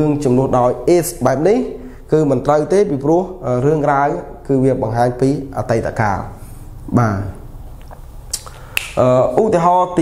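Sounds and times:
man speaking: 0.0s - 7.6s, 8.9s - 10.0s.

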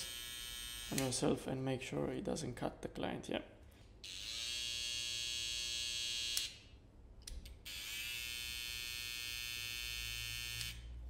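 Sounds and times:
hair trimmer buzzing: 0.0s - 1.1s, 4.0s - 6.5s, 7.7s - 10.8s.

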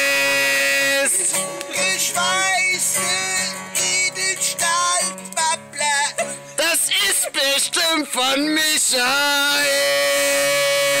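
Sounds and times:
person singing a long note: 9.0s - 11.0s.

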